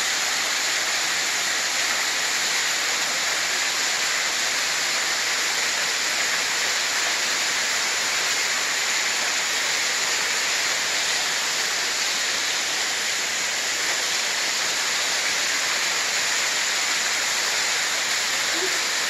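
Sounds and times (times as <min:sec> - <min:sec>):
waterfall rushing: 0:00.0 - 0:19.0.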